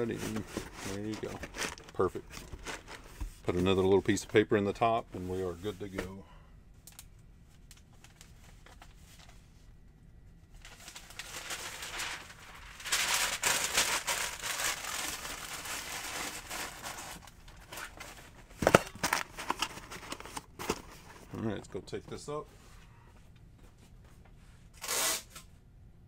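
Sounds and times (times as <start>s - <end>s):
packing paper crinkling: 0.0s - 3.2s, 10.6s - 21.4s.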